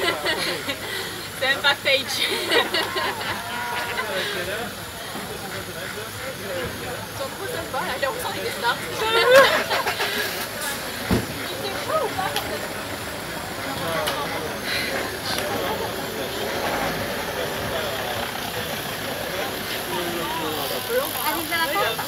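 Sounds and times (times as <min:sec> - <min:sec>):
background chatter: 0:00.0 - 0:22.0
bike trainers whirring: 0:00.0 - 0:22.0.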